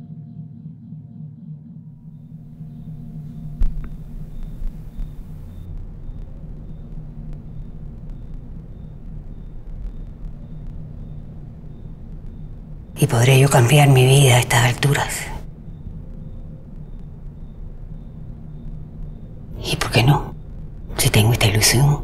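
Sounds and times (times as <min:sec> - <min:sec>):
low droning rumble: 0:00.0 - 0:21.9.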